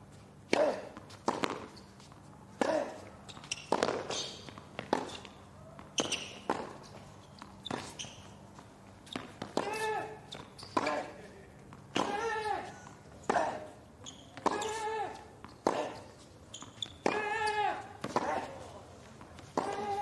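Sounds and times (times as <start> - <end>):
sneaker squeaks: 0.1 - 20.0
racquet hitting tennis ball: 0.5 - 1.7, 2.6 - 6.8, 9.1 - 10.2, 11.8 - 12.7, 14.3 - 16.1, 16.9 - 18.7, 19.4 - 20.0
ball bouncing on hard court: 0.6 - 1.8, 2.6 - 8.4, 9.0 - 11.1, 13.2 - 18.5, 19.4 - 20.0.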